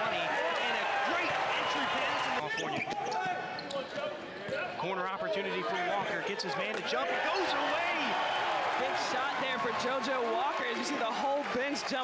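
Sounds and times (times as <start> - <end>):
arena crowd voices: 0.0 - 12.0.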